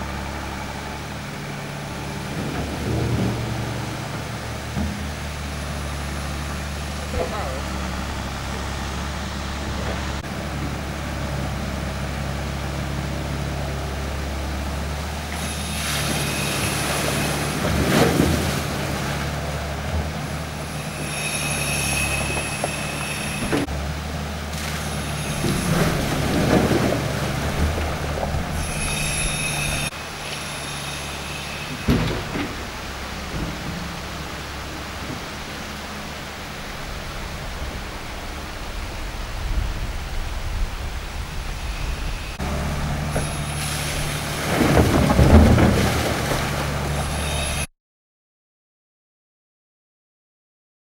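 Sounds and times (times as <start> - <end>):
excavator diesel engine running: 0.0 - 47.7
high hydraulic whines: 0.0 - 47.7.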